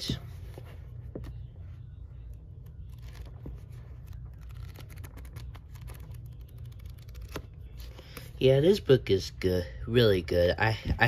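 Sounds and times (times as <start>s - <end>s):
book pages flipping: 0.2s - 8.4s.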